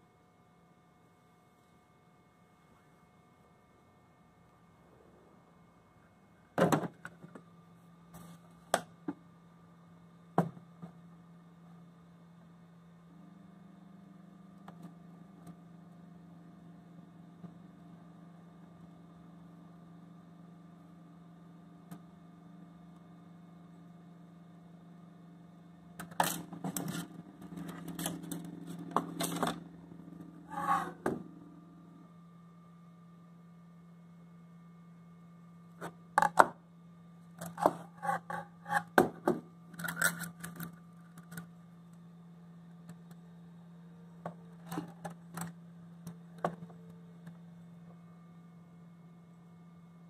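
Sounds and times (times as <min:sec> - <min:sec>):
low steady hum: 0:00.0 - 0:50.0
plastic scrape: 0:30.5 - 0:31.1, 0:37.4 - 0:39.0.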